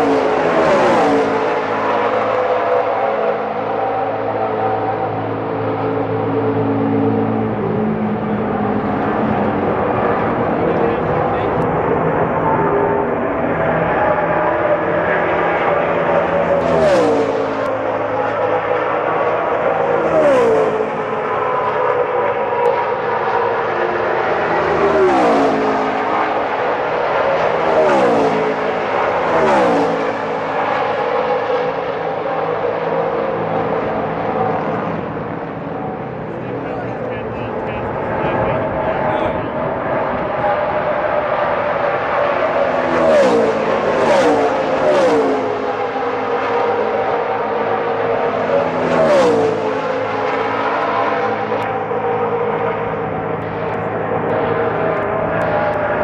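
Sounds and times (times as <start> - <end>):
race car engines passing by: 0.0 - 56.0.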